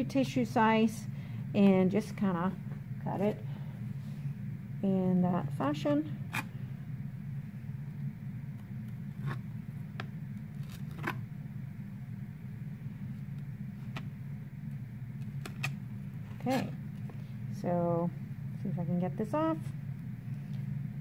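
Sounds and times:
low hum: 0:00.0 - 0:21.0.

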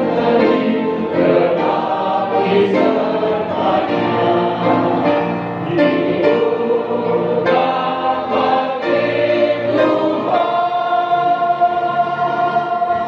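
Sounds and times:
grand piano playing gospel: 0:00.0 - 0:13.0
voices singing: 0:00.0 - 0:13.0.

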